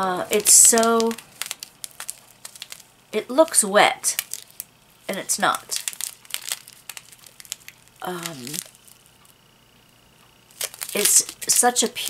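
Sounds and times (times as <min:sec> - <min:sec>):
plastic bag crinkling: 0:00.0 - 0:09.5, 0:10.5 - 0:12.0.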